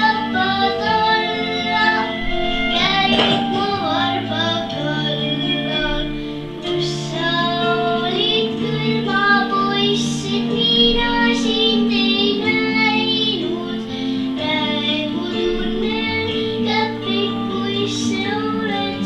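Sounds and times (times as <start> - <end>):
girl singing: 0.0 - 19.0
instrumental backing track: 0.0 - 19.0.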